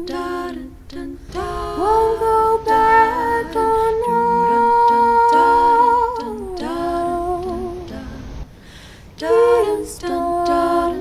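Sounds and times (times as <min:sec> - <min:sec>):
woman humming: 0:01.2 - 0:08.3.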